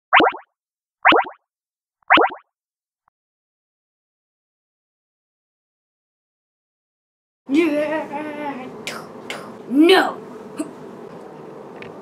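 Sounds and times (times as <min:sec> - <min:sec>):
cartoon falling pitch hits: 0:00.2 - 0:00.4, 0:01.1 - 0:01.4, 0:02.1 - 0:02.4.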